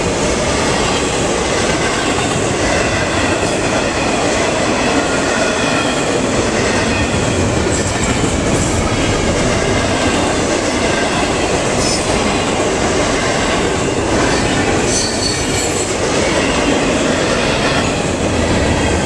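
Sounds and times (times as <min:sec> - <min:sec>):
freight train rolling past: 0:00.0 - 0:19.0.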